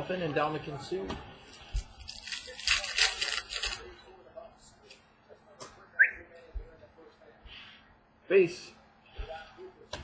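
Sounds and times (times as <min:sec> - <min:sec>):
plastic wrapper crinkling and tearing: 0:02.0 - 0:03.9.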